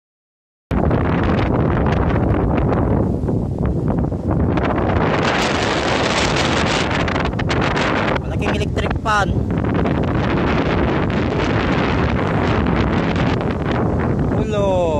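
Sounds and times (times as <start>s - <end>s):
wind buffeting microphone: 0.7s - 14.9s.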